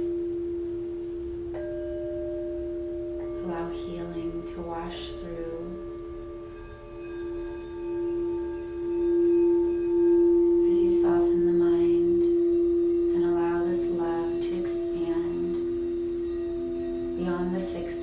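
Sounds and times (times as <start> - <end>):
singing bowl steady tone: 0.0 - 18.0.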